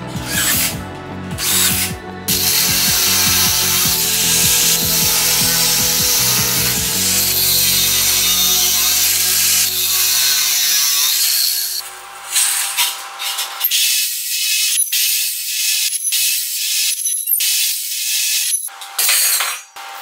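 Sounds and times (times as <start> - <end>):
angle grinder cutting metal: 0.0 - 20.0
cordless drill boring into metal: 1.4 - 19.3.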